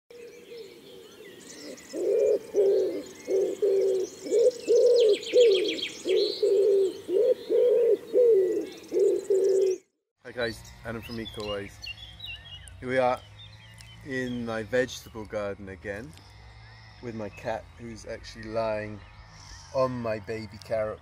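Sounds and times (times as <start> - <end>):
small birds chirping: 0.1 - 21.0
bird cooing: 0.2 - 9.9
rapid bird trill: 0.2 - 14.6.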